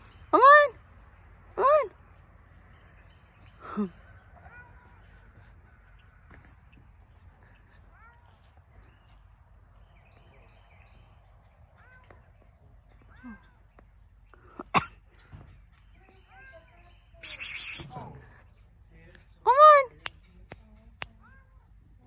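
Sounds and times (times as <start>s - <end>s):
faint high bird chirps: 7.4s - 14.4s, 15.2s - 19.1s.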